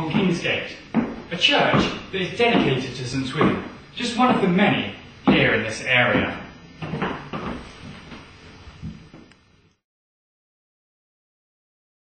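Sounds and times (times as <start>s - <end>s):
sharp knocks: 0.1s - 3.8s, 5.2s - 7.6s
dull thump: 0.9s - 2.8s.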